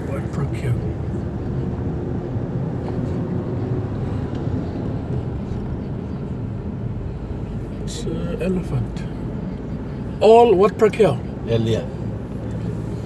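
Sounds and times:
vehicle engine and road noise: 0.0s - 13.0s.

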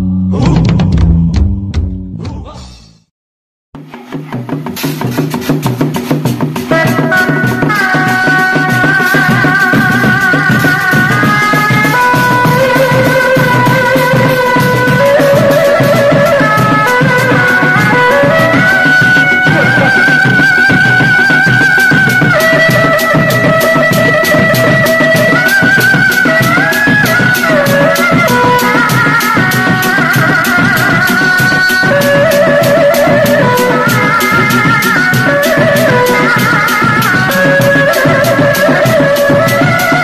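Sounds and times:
large barrel drum: 0.3s - 2.6s
wooden drums beaten in rhythm: 3.8s - 40.0s
reedy wind instrument: 6.0s - 40.0s.

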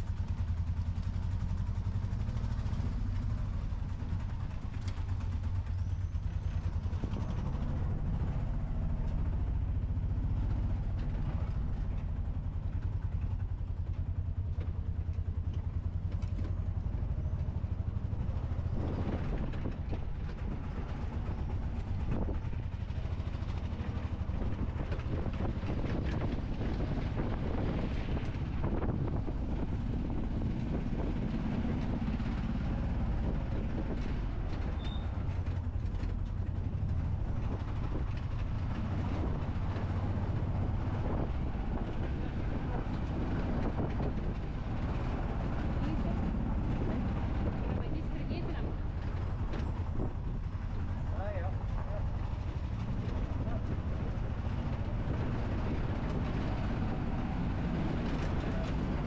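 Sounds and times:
road noise: 0.0s - 59.0s
small engine rumbling: 0.0s - 59.0s.

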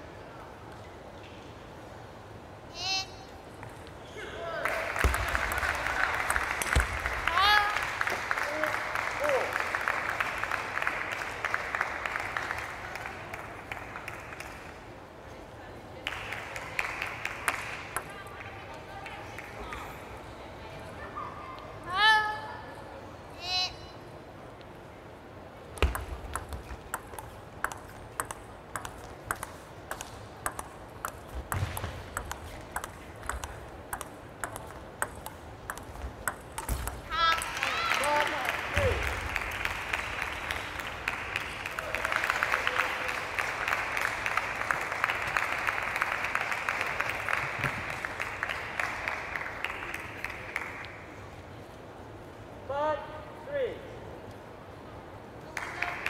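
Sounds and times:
applause and cheering: 4.6s - 14.8s, 37.2s - 51.1s, 55.4s - 56.0s
table tennis ball clicking: 25.8s - 37.6s.

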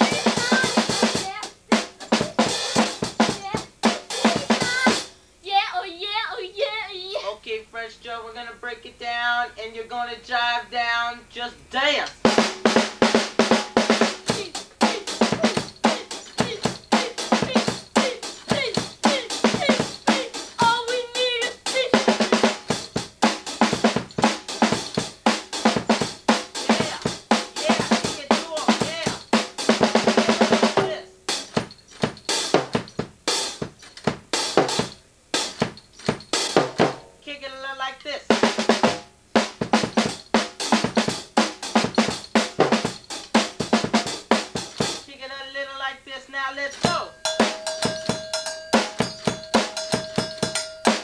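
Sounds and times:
drum kit playing fast break: 0.0s - 5.2s, 12.2s - 37.1s, 38.3s - 45.1s, 46.7s - 51.0s.

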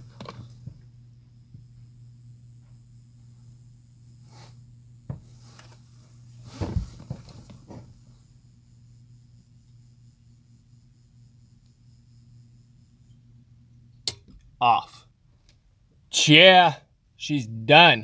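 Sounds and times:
rustling: 5.3s - 8.0s.

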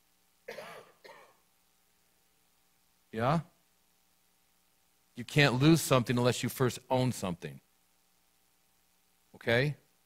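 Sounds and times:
person clearing throat: 0.5s - 1.4s.

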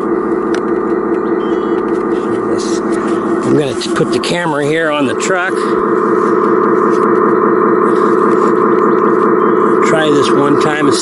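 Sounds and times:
model truck motor humming: 0.0s - 11.0s.

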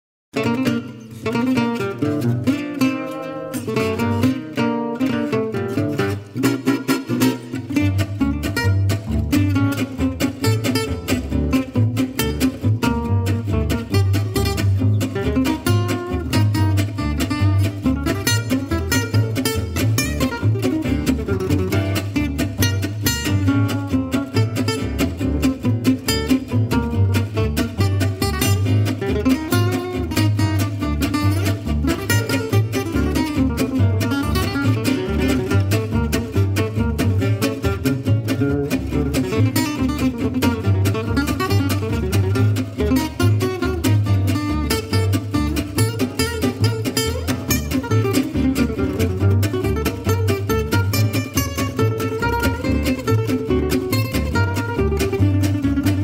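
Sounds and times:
plucked double bass: 0.3s - 56.0s
acoustic guitars strumming: 0.4s - 56.0s.

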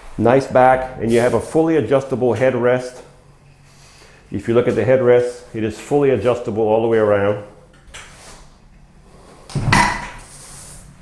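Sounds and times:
power chair bumping into wall: 9.6s - 10.2s.

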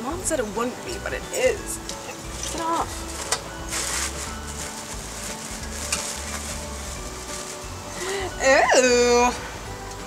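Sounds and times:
soft background music: 0.0s - 10.0s
packaging crinkling rustle: 2.3s - 8.2s.

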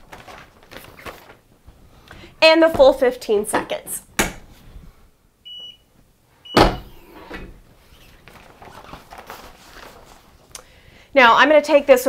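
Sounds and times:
electronic timer beeps: 5.5s - 5.8s
heat press clunking: 6.6s - 7.6s.

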